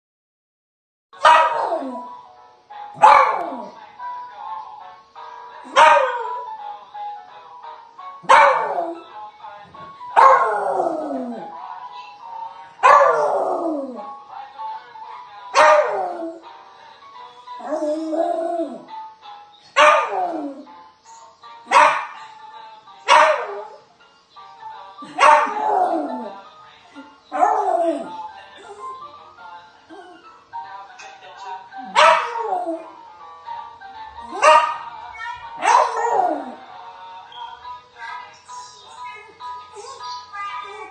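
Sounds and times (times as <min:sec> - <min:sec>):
music: 0:01.2 - 0:40.9.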